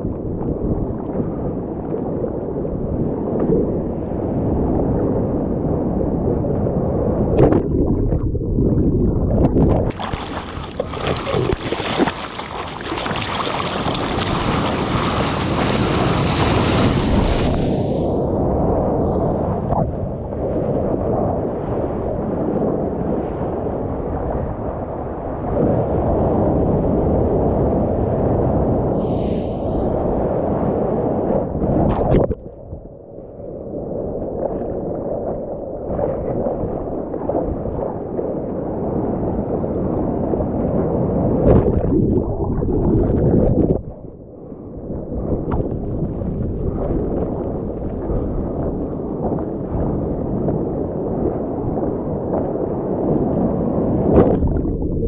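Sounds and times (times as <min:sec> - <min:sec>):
whitewater churning and splashing: 0:09.9 - 0:18.1.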